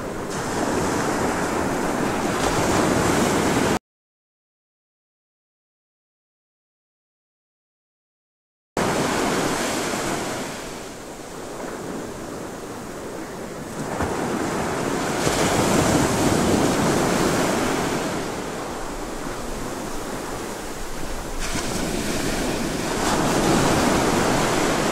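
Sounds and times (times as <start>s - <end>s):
sea surf: 0.0s - 3.8s, 8.8s - 24.9s
wind buffeting microphone: 0.0s - 3.8s, 8.8s - 24.9s.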